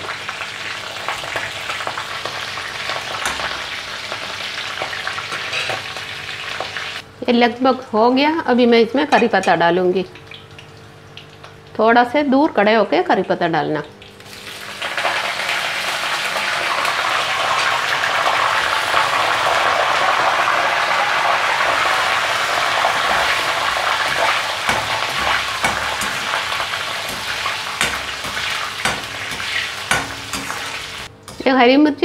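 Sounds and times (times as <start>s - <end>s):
leaves sizzling in hot oil: 0.0s - 7.0s, 14.2s - 31.6s
spoon scraping metal pan: 5.3s - 5.9s, 27.0s - 31.5s.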